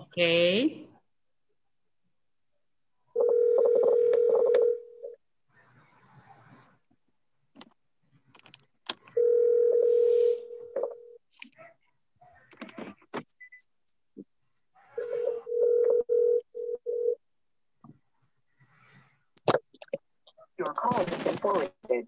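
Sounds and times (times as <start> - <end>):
telephone ringback tone: 3.2 - 5.2, 9.2 - 11.1, 15.0 - 17.2.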